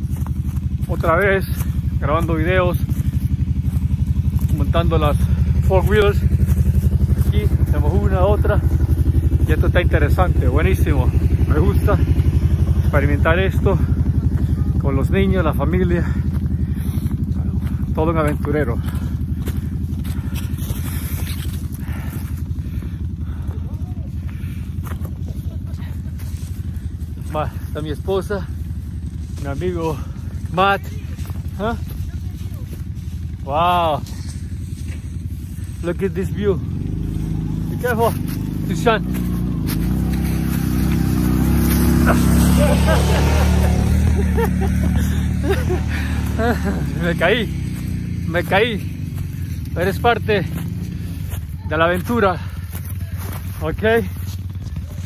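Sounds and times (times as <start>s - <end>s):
atv engine rumbling: 0.0s - 55.0s.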